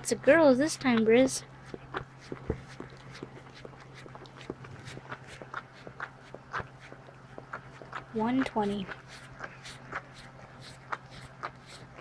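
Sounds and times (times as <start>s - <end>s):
steady low hum: 0.0s - 12.0s
dog licking puppy: 0.2s - 12.0s.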